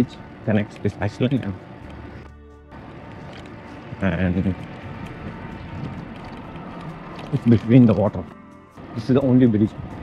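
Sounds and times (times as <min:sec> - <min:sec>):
bicycle tyres rolling on boardwalk: 0:00.0 - 0:08.2
wind over microphone: 0:04.6 - 0:07.6.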